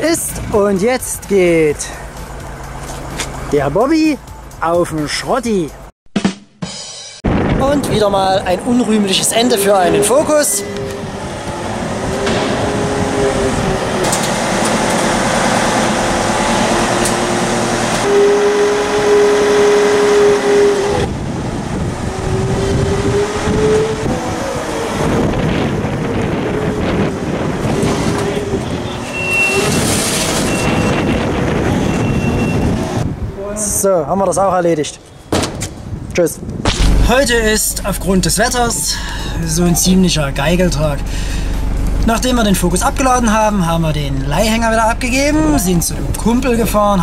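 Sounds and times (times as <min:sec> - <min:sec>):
forklift engine and hydraulics: 0:08.8 - 0:33.3, 0:36.8 - 0:47.0.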